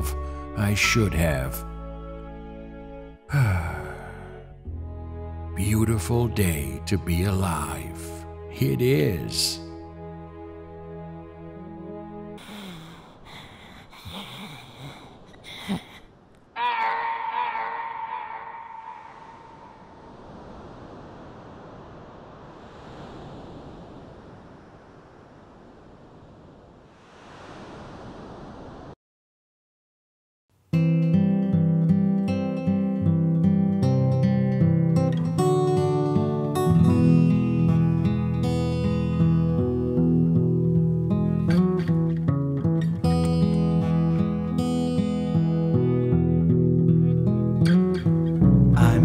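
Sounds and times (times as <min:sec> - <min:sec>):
man sighing: 0:03.3 - 0:04.5
steady rushing noise: 0:18.9 - 0:29.0.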